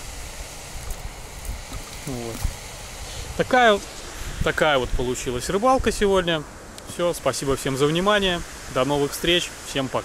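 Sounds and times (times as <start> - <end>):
wind rumbling on microphone: 0.0 - 9.4
faint outdoor hiss: 0.0 - 10.0.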